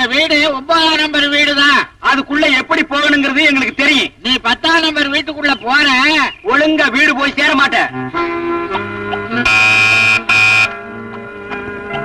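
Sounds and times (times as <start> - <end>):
film music: 7.2 - 12.0
electric doorbell buzzer: 9.5 - 10.8.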